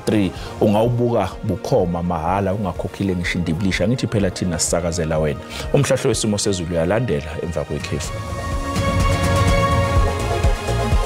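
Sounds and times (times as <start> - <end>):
background music with low drone: 0.0 - 11.0
man speaking: 2.4 - 8.2.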